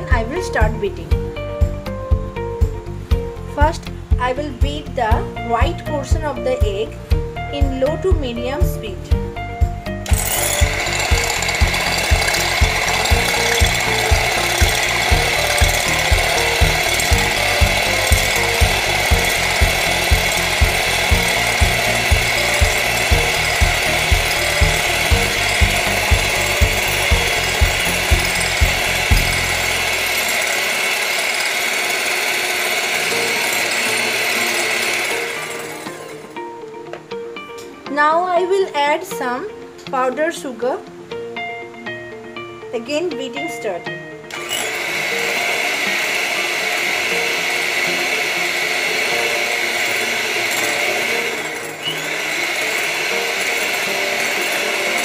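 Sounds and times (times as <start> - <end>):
electric hand mixer whining: 9.9 - 36.6, 44.3 - 55.0.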